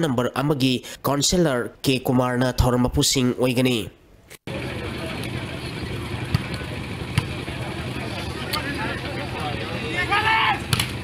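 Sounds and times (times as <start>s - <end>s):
crowd murmur: 4.5s - 11.0s
low hum: 4.5s - 11.0s
volleyball being struck: 6.3s - 7.4s, 10.7s - 11.0s
faint shouts: 9.7s - 10.7s.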